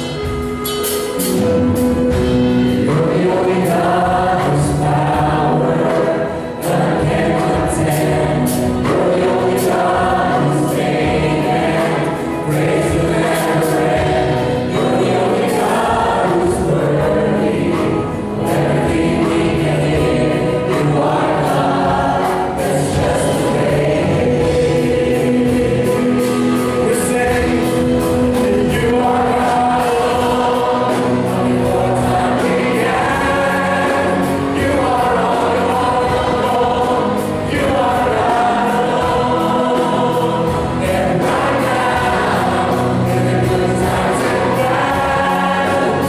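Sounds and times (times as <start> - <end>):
band with drums bass and guitar: 0.0 - 46.0
choir and singers singing: 0.0 - 46.0.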